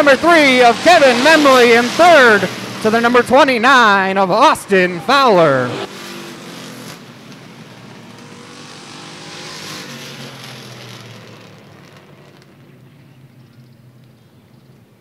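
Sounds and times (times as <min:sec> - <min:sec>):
race cars passing: 0:00.0 - 0:14.9.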